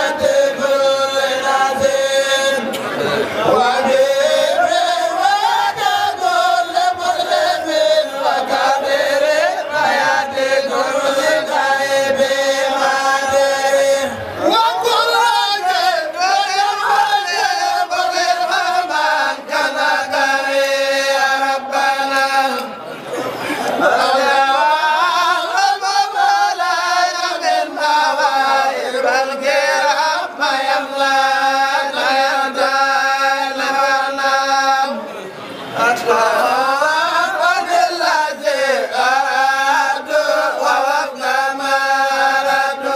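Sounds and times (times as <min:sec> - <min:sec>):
voices chanting: 0:00.0 - 0:42.9.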